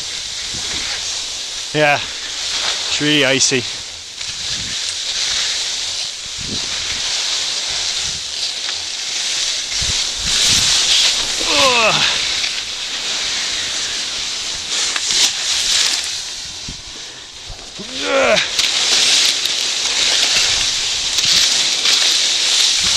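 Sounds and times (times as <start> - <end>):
skis scraping over icy snow: 0.0 - 22.9.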